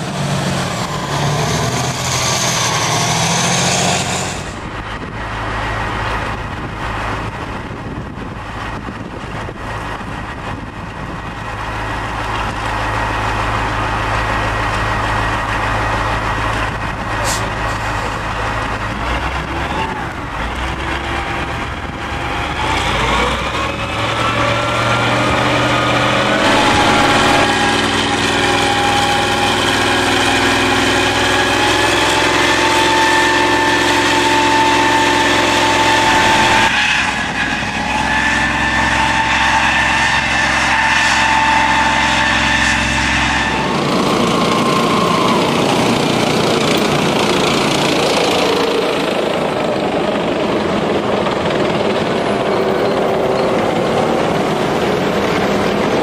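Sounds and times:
rushing vehicle noise: 0.0 - 56.0
tracked vehicle engine running: 0.0 - 56.0
high whine: 25.1 - 45.8.

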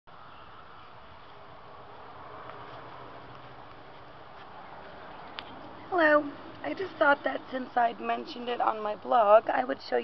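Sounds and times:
outdoor background hiss: 0.1 - 10.0.

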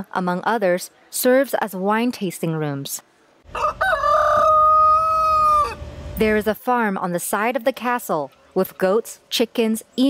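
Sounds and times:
rooster crowing: 3.5 - 5.9.

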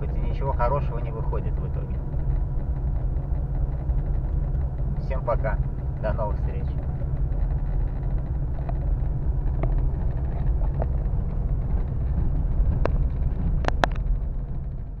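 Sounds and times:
low rumble inside car: 0.0 - 15.0.

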